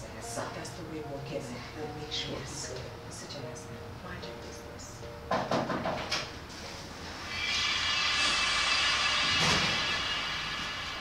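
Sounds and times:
noisy whoosh swell: 0:06.5 - 0:11.0.

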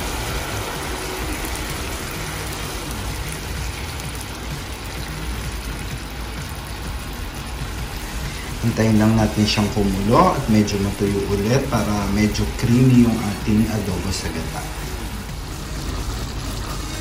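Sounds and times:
pan simmering with hiss: 0:00.0 - 0:17.0.

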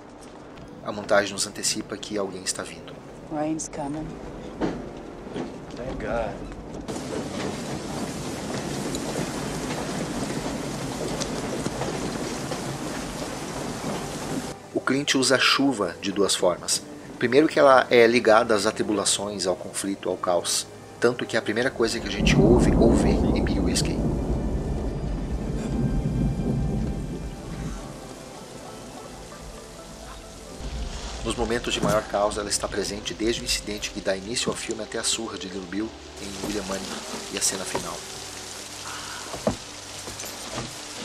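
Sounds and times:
rain falling: 0:00.0 - 0:41.0
thunder rumbling: 0:05.5 - 0:14.6, 0:21.8 - 0:39.9.

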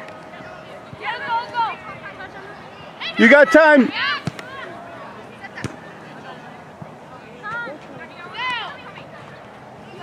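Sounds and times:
murmur of voices: 0:00.0 - 0:10.0
distant shouted calls: 0:00.3 - 0:06.0.

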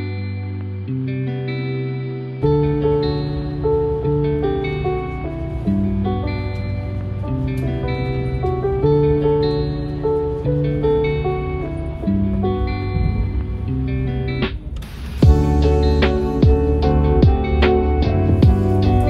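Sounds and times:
instrumental guitar music: 0:00.0 - 0:19.0.

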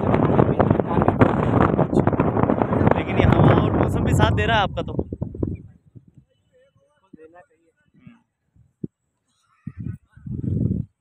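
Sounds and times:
wind rumbling on microphone: 0:00.0 - 0:06.4, 0:07.9 - 0:11.0
people talking: 0:00.0 - 0:08.2.

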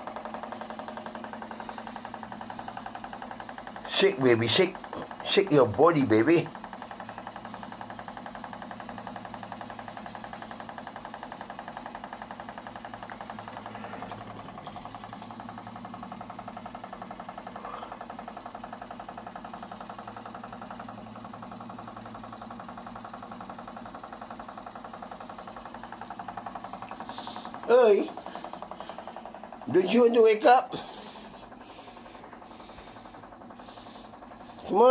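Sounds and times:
exercise machine buzzing: 0:00.0 - 0:34.9.

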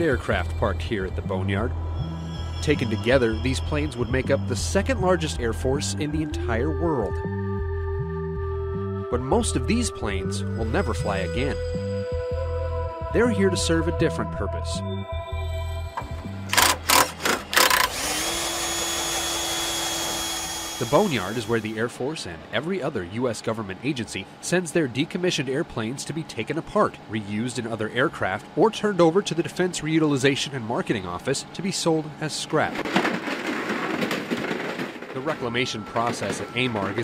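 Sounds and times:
mechanical hum with high whine: 0:00.0 - 0:08.2, 0:15.8 - 0:37.0
music tones: 0:00.0 - 0:18.2, 0:35.2 - 0:37.0
excavator crushing sheet metal: 0:16.5 - 0:18.6, 0:32.6 - 0:37.0.

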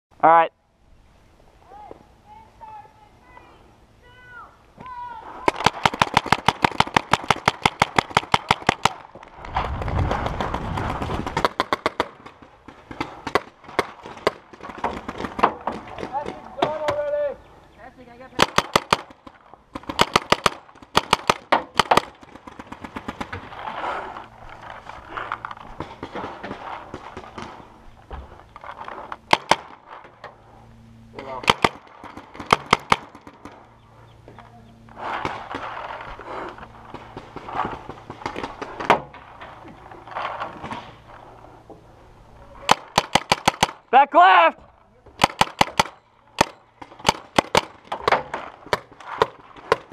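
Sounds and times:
paintball markers firing bursts: 0:05.5 - 0:09.1, 0:18.4 - 0:23.5, 0:29.3 - 0:29.9, 0:31.4 - 0:33.6, 0:42.6 - 0:43.9, 0:45.2 - 0:49.9.

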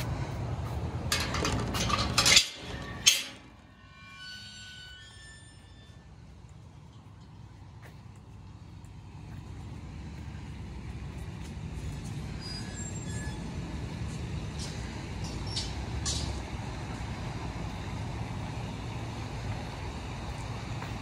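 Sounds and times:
low outdoor rumble: 0:00.0 - 0:21.0.

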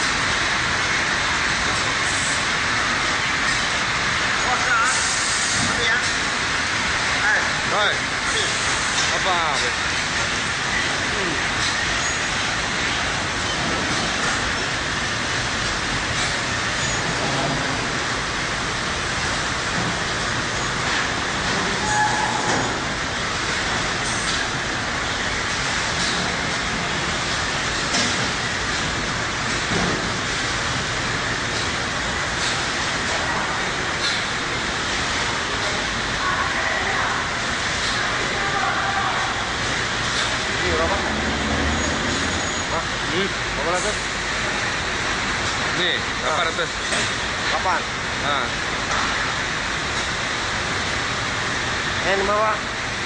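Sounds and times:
steady background noise: 0:00.0 - 0:53.0.

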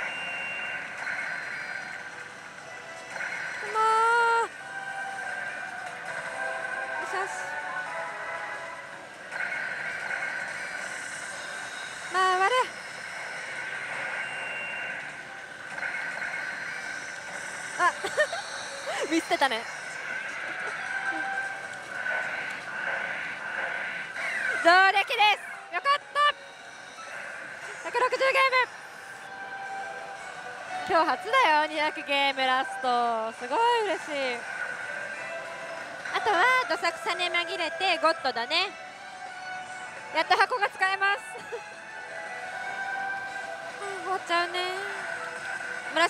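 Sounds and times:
held electronic game tones: 0:00.0 - 0:04.6, 0:09.3 - 0:22.7
gaming parlor din: 0:00.0 - 0:26.5.

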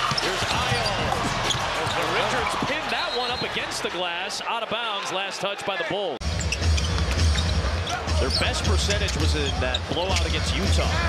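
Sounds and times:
crowd noise: 0:00.0 - 0:11.0
bass-heavy music over speakers: 0:06.2 - 0:11.0.

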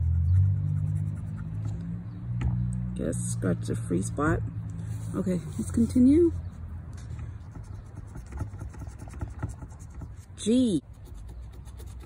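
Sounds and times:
scratching lottery ticket: 0:07.5 - 0:12.0.

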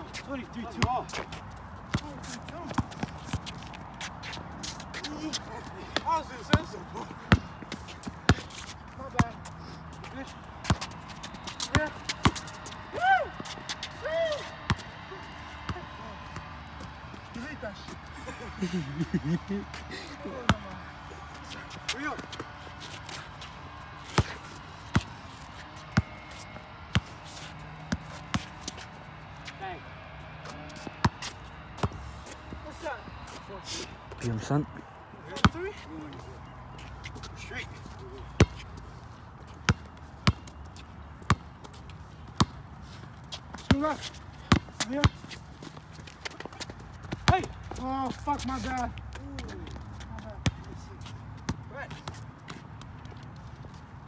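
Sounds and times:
basketball bouncing on concrete: 0:00.6 - 0:01.3, 0:01.9 - 0:03.6, 0:08.0 - 0:09.4, 0:10.2 - 0:12.8, 0:39.6 - 0:40.6, 0:41.2 - 0:42.6, 0:43.5 - 0:45.4, 0:46.2 - 0:50.7.

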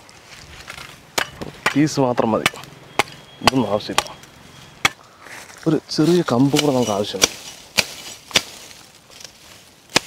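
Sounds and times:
machete chopping grass: 0:00.7 - 0:04.2, 0:06.2 - 0:10.0.

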